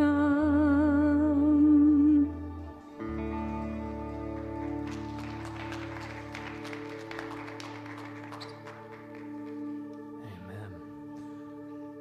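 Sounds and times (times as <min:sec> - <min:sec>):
congregation clapping: 0:03.5 - 0:10.2.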